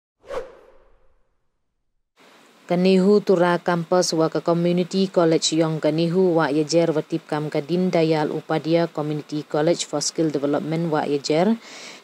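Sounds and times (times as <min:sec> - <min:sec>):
whoosh: 0:00.2 - 0:01.4.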